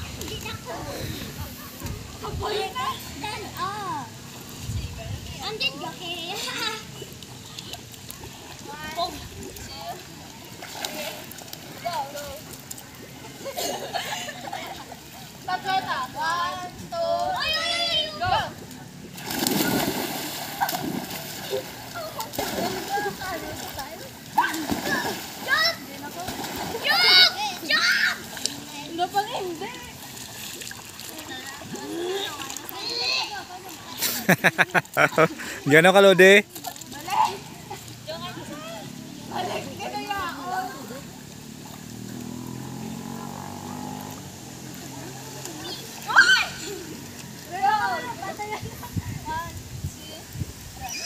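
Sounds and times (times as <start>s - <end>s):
water sloshing: 0.0s - 51.0s
children splashing into pool: 5.9s - 16.4s, 17.2s - 35.6s, 38.6s - 48.3s
children calling out: 15.7s - 18.6s, 24.4s - 28.6s, 45.2s - 48.8s, 50.8s - 51.0s
child shouting: 17.3s - 18.5s, 24.4s - 25.8s, 26.8s - 28.2s, 46.0s - 46.6s.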